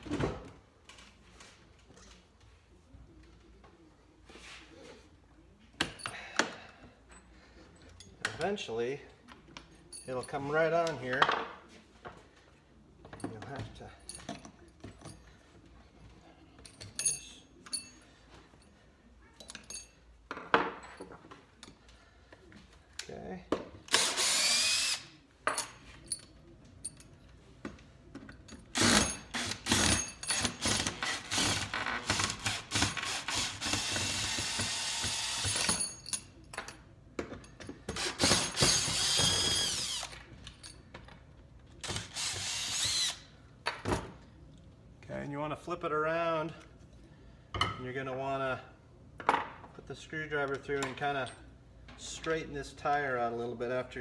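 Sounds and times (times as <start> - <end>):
metal parts clinking: 16.6 - 18.0
cordless drill whining: 23.9 - 25.0, 32.4 - 35.6, 38.0 - 40.2, 41.8 - 43.2.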